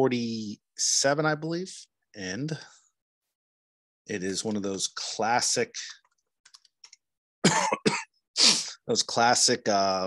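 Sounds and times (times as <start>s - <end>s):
man coughing: 7.4s - 8.6s.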